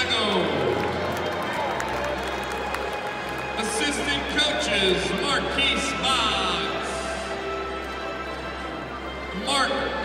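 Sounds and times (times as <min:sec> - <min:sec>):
crowd talking: 0:00.0 - 0:10.0
public-address music: 0:00.0 - 0:10.0.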